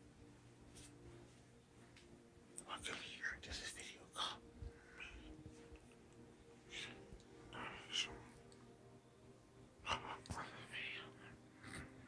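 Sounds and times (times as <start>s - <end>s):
person whispering: 2.6s - 5.7s, 6.6s - 8.6s, 9.8s - 12.0s.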